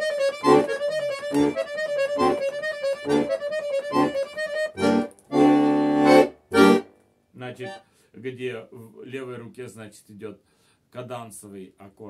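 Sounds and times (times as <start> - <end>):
button accordion playing a tune: 0.0 - 6.9, 7.6 - 7.8.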